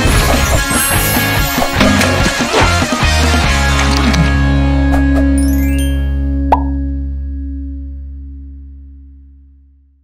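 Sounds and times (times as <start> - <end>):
short pop sound effect: 6.5 - 6.8.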